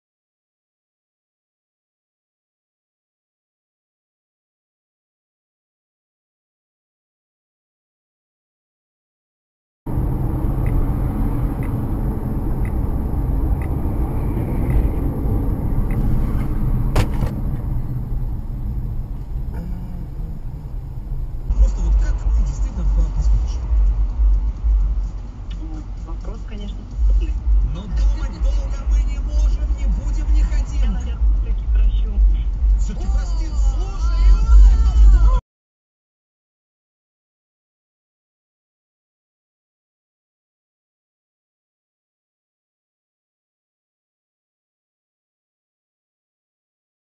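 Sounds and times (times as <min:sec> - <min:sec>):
car engine and road noise: 0:09.9 - 0:35.4
low road rumble: 0:09.9 - 0:35.4.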